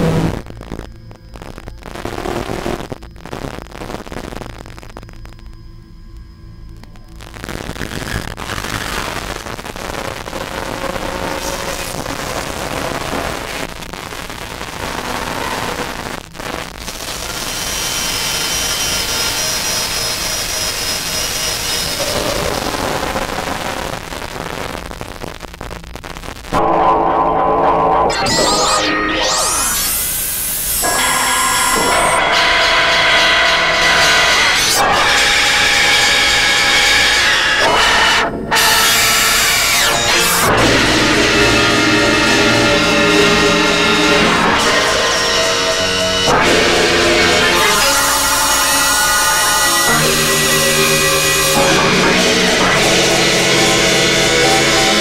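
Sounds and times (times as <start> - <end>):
harsh industrial noise music: 0.0 - 3.0, 6.7 - 24.4, 26.5 - 55.0
electronic noise wash: 0.0 - 24.7, 26.6 - 55.0
high held tones: 28.1 - 55.0.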